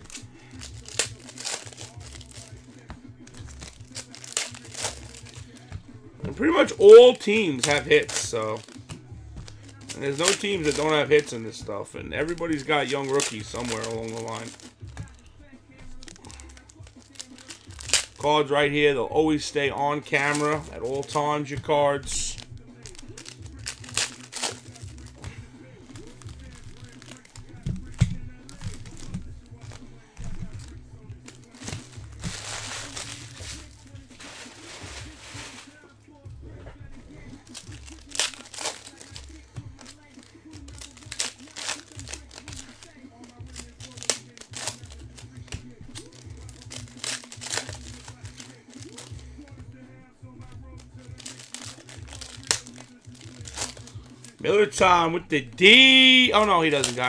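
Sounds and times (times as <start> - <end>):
cards clicking and rustling: 0.0 - 35.8, 36.6 - 57.0
foil wrappers crinkling and tearing: 0.0 - 36.0, 36.7 - 57.0.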